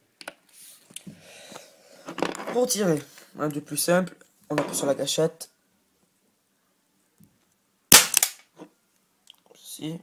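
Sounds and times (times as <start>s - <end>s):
airsoft pistol shot: 7.9s - 8.4s.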